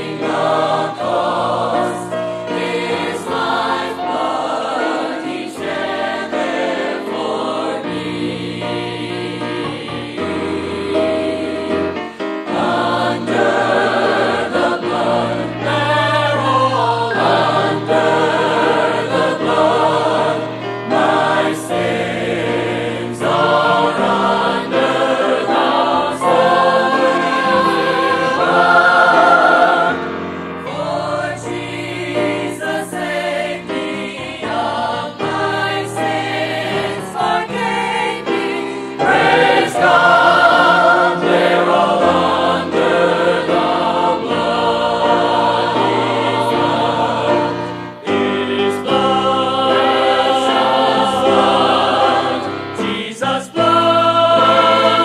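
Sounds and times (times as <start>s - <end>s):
group singing gospel in harmony: 0.0s - 55.0s
piano: 0.0s - 55.0s.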